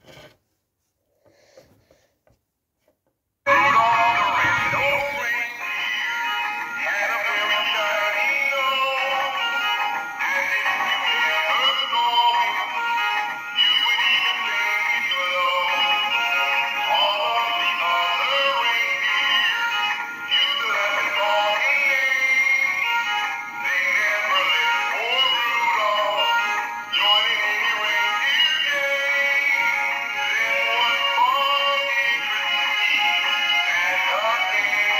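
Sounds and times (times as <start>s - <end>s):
christmas song from toy speakers: 3.5s - 34.9s.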